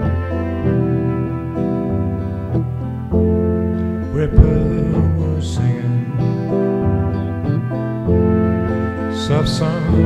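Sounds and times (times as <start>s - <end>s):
keyboard playing slow chords: 0.0s - 10.0s.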